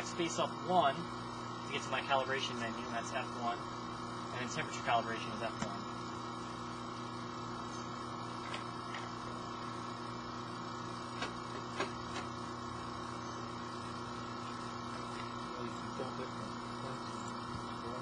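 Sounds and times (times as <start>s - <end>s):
steady mechanical hum: 0.0s - 18.0s.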